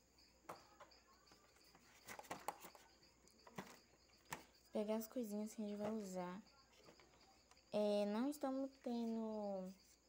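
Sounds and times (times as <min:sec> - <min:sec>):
faint high-pitched chirping: 0:00.0 - 0:10.0
plastic handling clicks and rustles: 0:01.7 - 0:04.5.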